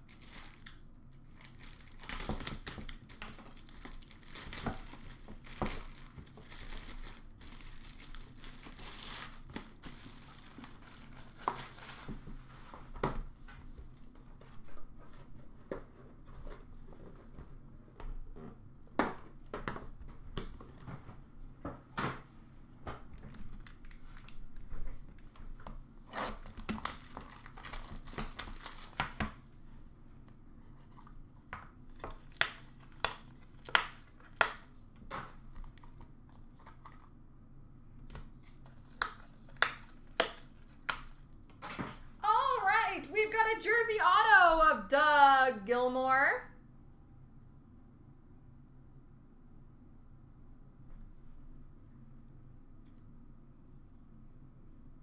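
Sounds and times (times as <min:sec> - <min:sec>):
plastic wrapper crinkling and tearing: 0:00.0 - 0:12.4, 0:23.1 - 0:24.7, 0:26.1 - 0:29.4, 0:31.9 - 0:34.7, 0:38.4 - 0:41.2.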